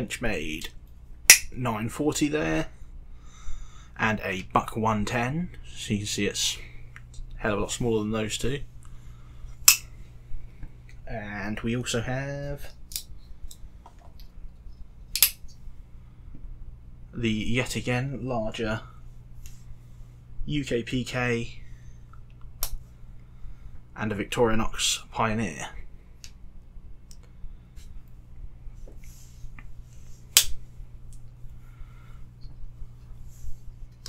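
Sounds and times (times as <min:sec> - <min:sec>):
folding knife click: 0:15.1 - 0:15.4.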